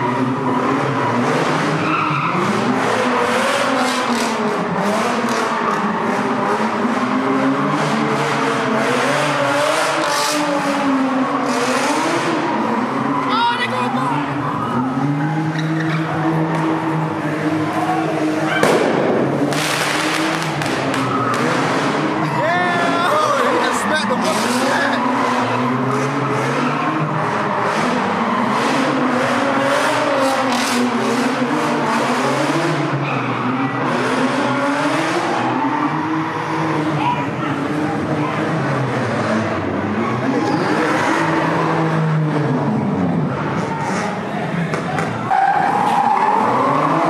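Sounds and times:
car engine revving hard: 0.0 - 47.0
tyres squealing and skidding: 0.0 - 47.0
people shouting: 12.6 - 18.7, 20.6 - 27.8
loud bang: 18.5 - 21.5
sharp cracks: 18.6 - 22.0.

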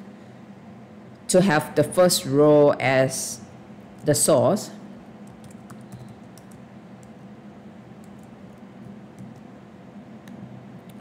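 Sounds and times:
faint steady hum: 0.0 - 11.0
computer keyboard keystrokes: 5.2 - 7.2, 8.0 - 8.3, 9.2 - 9.5.

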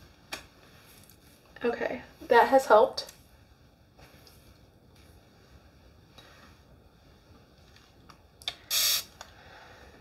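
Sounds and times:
spray hiss: 8.6 - 9.1.

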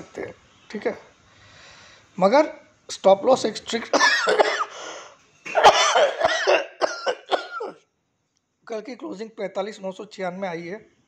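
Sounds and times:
man coughing: 3.9 - 4.9, 5.5 - 7.8.

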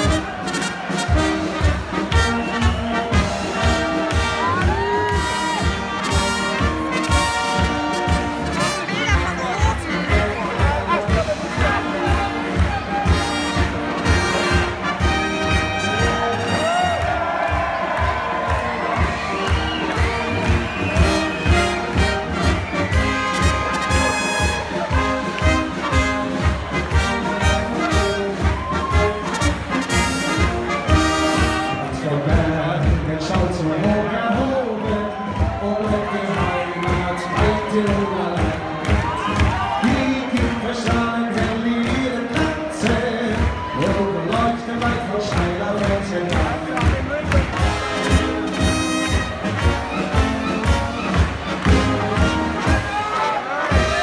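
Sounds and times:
brass band playing: 0.0 - 54.0
crowd cheering and shouting: 0.0 - 54.0
person singing into a microphone: 31.8 - 39.0, 39.8 - 46.8.

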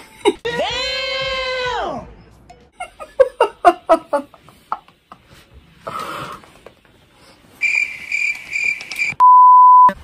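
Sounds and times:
cricket chirping: 7.6 - 9.2.

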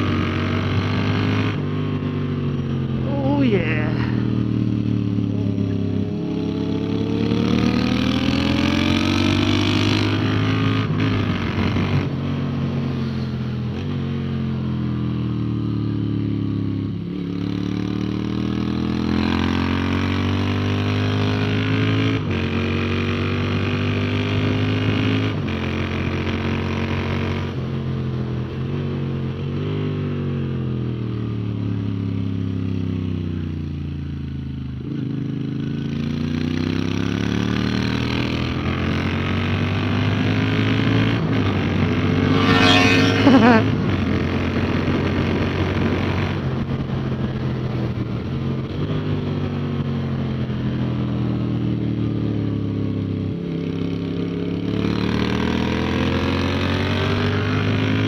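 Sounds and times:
motorcycle engine revving through gears: 0.0 - 3.1, 4.0 - 58.0.

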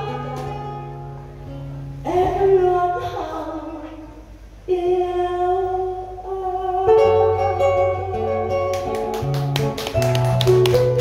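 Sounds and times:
acoustic guitar and bass: 0.0 - 5.8, 6.7 - 11.0.

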